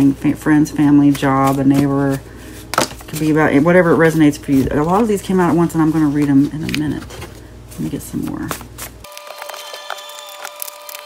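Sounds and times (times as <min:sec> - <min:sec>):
cards clicking and snapping: 0:09.0 - 0:11.0.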